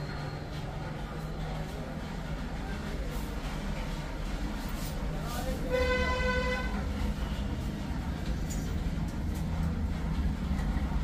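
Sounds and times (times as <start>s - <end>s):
street traffic rumble: 0.0s - 11.0s
vehicle horn toot: 5.7s - 6.8s.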